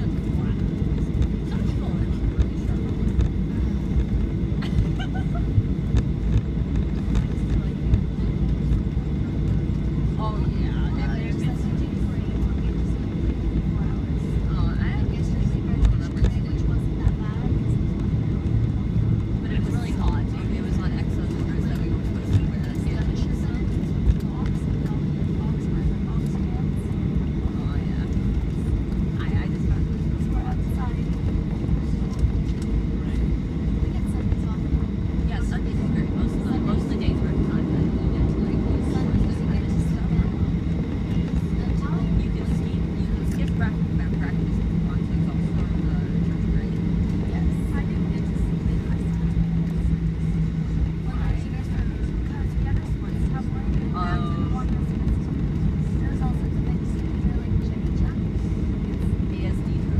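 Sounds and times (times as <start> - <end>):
faint passenger chatter: 0.0 - 59.9
jet engines rumbling: 0.0 - 59.9
wheels rolling on taxiway: 0.0 - 59.9.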